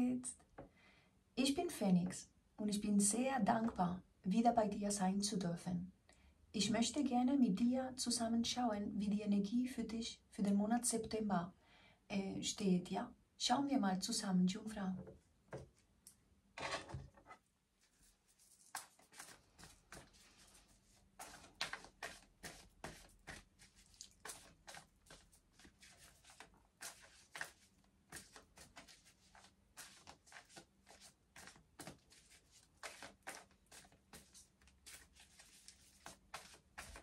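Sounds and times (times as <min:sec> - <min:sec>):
cards being shuffled: 0:18.5 - 0:37.0.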